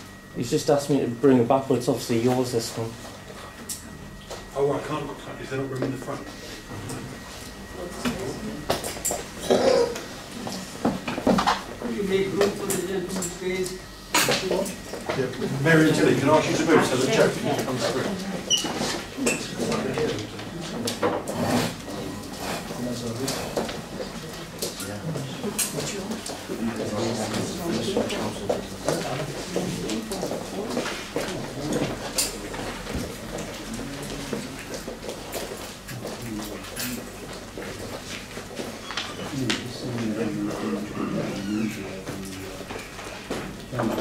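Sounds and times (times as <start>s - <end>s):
chairs knocking and clattering: 10.7s - 11.7s
chatter of many people: 39.0s - 44.0s.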